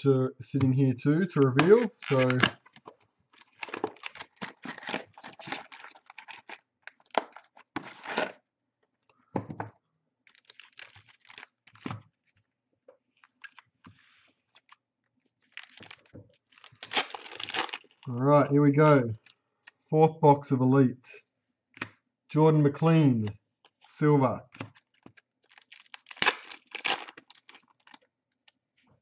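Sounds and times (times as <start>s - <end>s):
foil packs rustling: 1.8s - 2.8s, 3.4s - 8.4s, 15.5s - 18.1s, 25.4s - 28.0s
foil pack tearing: 3.5s - 8.4s, 15.6s - 18.0s, 25.4s - 28.0s.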